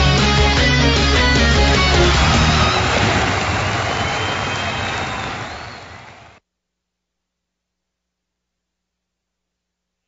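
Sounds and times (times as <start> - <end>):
rock music crash: 0.0 - 5.0.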